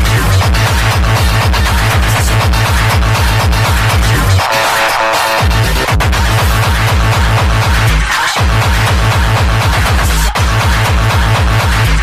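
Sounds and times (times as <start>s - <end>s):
distorted kick drum: 0.0s - 12.0s
hard dance music: 0.0s - 12.0s.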